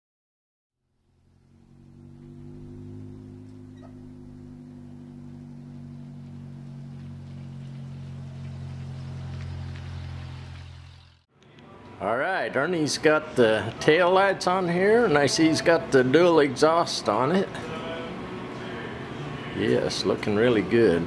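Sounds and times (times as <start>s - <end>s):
small car engine driving past: 0.8s - 11.3s.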